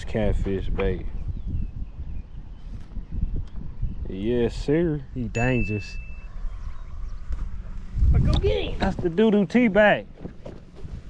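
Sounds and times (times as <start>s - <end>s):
wind buffeting microphone: 0.0s - 11.0s
high steady ringing tone: 5.3s - 7.0s.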